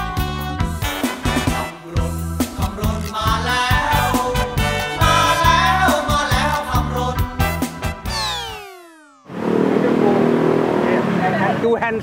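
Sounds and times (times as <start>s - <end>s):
people talking: 9.6s - 12.0s.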